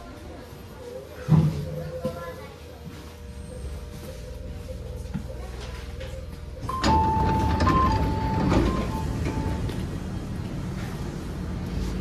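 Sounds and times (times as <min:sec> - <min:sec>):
train doors sliding open: 0:06.7 - 0:09.8.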